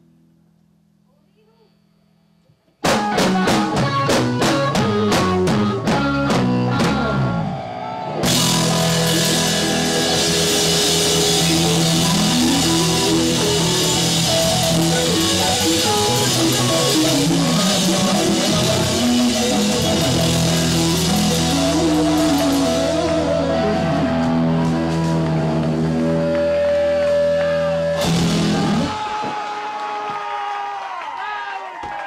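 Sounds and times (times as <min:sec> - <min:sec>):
short repeated guitar chords: 0:02.8 - 0:07.6, 0:08.2 - 0:29.0
live rock band playing: 0:02.8 - 0:29.5.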